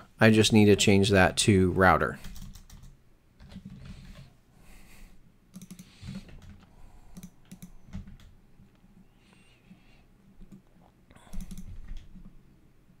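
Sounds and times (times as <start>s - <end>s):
computer keyboard typing: 2.2s - 4.3s, 5.5s - 8.4s, 10.4s - 12.3s.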